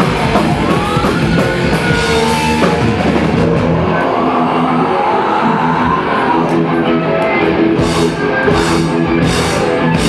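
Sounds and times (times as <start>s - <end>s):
distorted electric guitars droning: 0.0s - 10.0s
metal band playing loud: 0.0s - 10.0s.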